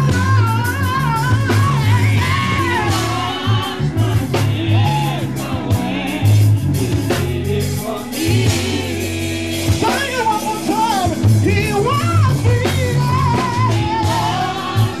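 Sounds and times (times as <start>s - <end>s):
band with bass and drums: 0.0s - 15.0s
gospel group singing: 0.0s - 15.0s.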